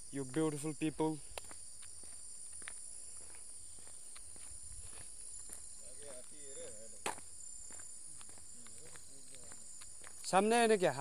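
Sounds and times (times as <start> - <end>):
high-pitched insect chorus: 0.0 - 11.0
footsteps on asphalt: 0.2 - 11.0.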